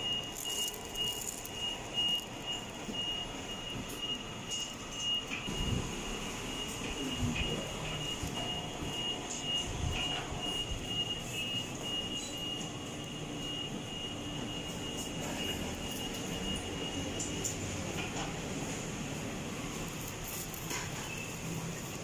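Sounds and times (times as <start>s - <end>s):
arcade ambience hum: 0.0s - 22.0s.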